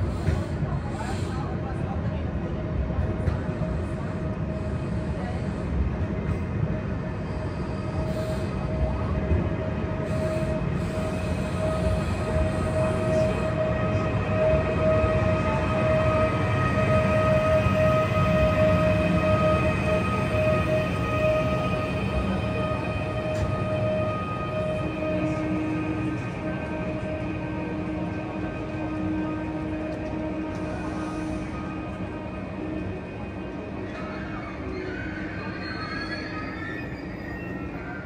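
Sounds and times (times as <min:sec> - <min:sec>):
electric train whine: 0:00.0 - 0:38.0
train rumble: 0:00.0 - 0:38.0.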